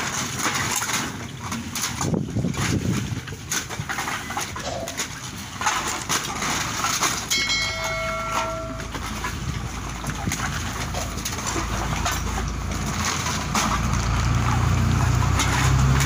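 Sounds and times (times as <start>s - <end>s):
cans and bottles clinking: 3.6s - 16.0s
brief ringing tone: 7.3s - 9.0s.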